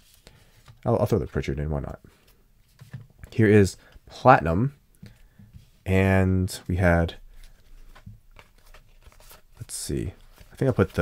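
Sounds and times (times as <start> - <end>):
cards sliding and ticking: 7.3 - 11.0.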